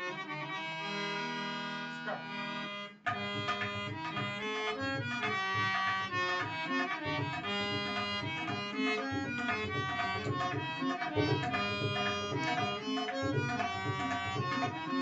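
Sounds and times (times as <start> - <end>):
harmonium chords and melody: 0.0 - 15.0
tabla fast strokes: 3.1 - 15.0.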